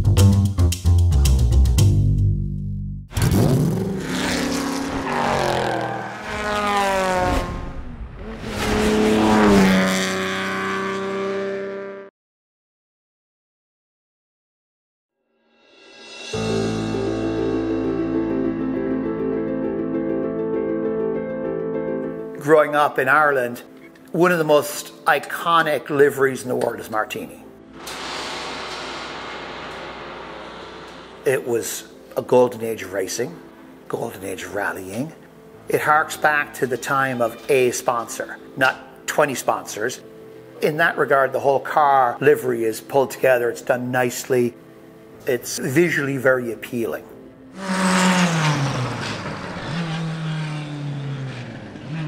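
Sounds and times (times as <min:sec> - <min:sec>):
racing car engine revving: 0:03.1 - 0:12.1, 0:27.8 - 0:32.1, 0:47.6 - 0:52.0
steady rushing hiss: 0:27.7 - 0:32.6.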